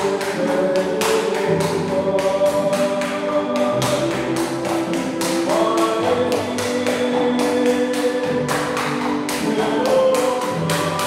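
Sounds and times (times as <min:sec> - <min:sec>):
choral singing: 0:00.0 - 0:11.0
tap shoes on tiled floor: 0:00.0 - 0:11.0.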